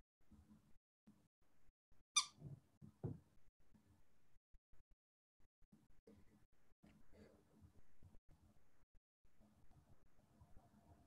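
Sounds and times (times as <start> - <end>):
high-pitched squeak: 2.2 - 2.4.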